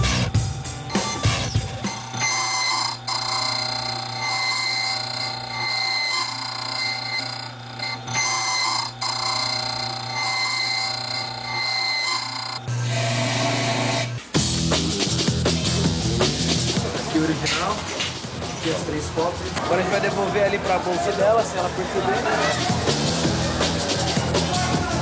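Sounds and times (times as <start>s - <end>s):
low machine hum: 0.3s - 12.7s
key cutting machine whine: 0.9s - 13.2s.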